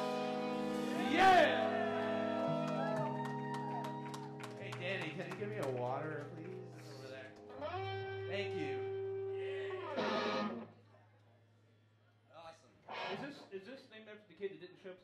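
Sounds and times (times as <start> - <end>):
live band with guitar: 0.0 - 10.7, 12.9 - 13.5
guitar strummed burst: 7.6 - 10.7, 12.9 - 13.4.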